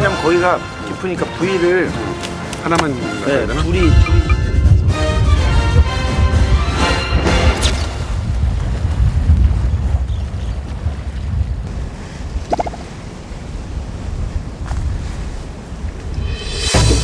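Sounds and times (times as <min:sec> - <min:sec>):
wind buffeting microphone: 0:03.4 - 0:17.0.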